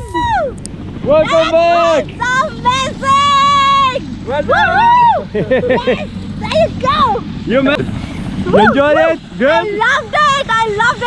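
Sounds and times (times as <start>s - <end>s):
people whooping and shrieking: 0.0s - 0.6s, 4.6s - 5.5s, 8.5s - 9.1s
people laughing: 5.3s - 6.1s.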